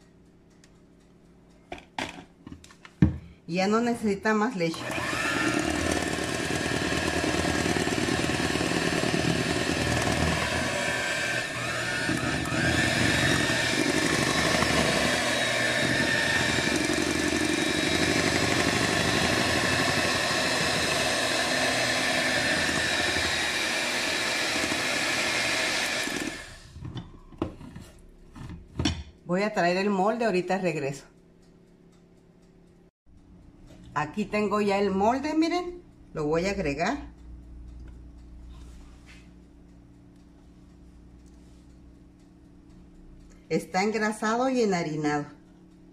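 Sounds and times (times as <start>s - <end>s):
electric hand mixer whisking batter: 4.6s - 26.8s.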